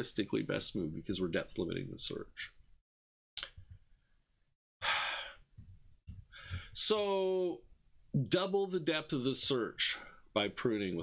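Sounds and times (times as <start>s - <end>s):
man breathing close to microphone: 4.8s - 5.6s, 6.2s - 6.8s.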